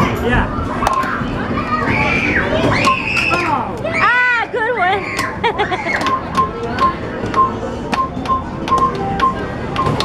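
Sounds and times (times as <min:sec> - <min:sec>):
children chattering: 0:00.5 - 0:07.3.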